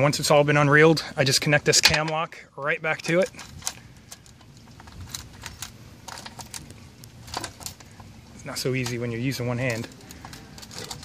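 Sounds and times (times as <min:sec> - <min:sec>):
hose coupling clicks and rattles: 0:01.7 - 0:08.1.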